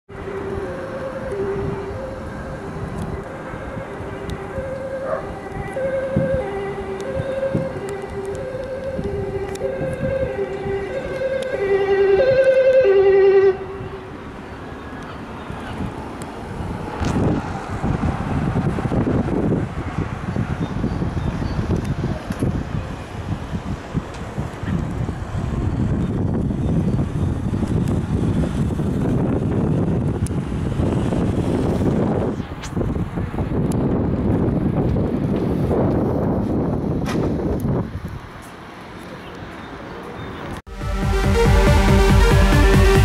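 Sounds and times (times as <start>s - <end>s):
ambulance two-tone siren: 0.1s - 15.0s, 40.7s - 43.0s
wind buffeting microphone: 0.1s - 38.4s
van passing on road: 0.1s - 43.0s.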